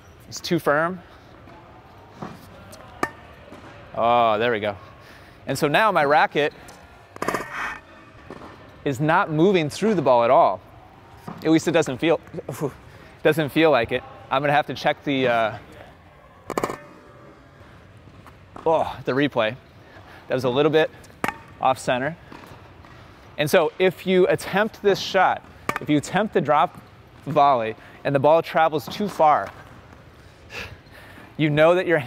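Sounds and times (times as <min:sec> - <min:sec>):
tennis ball hitting racket strings: 0:02.2 - 0:03.7, 0:07.2 - 0:08.6, 0:16.5 - 0:17.0, 0:21.0 - 0:21.6, 0:25.0 - 0:27.4
tennis ball struck with racket: 0:03.0 - 0:03.7, 0:16.5 - 0:17.0, 0:21.2 - 0:21.6, 0:25.5 - 0:26.0.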